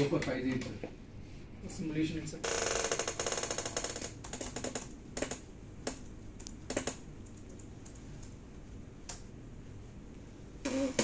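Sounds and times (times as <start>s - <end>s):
keyboard typing: 2.9s - 8.4s.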